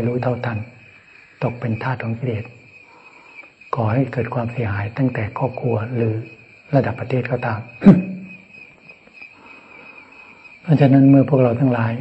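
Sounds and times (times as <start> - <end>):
man speaking: 0.0 - 2.6, 3.7 - 8.3, 10.7 - 12.0
insects chirring: 0.0 - 12.0.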